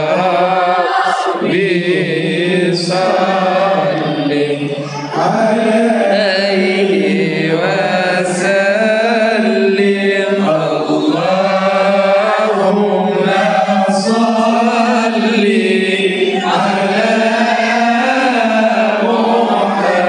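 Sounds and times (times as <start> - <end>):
voices chanting devotional praise: 0.0 - 20.0.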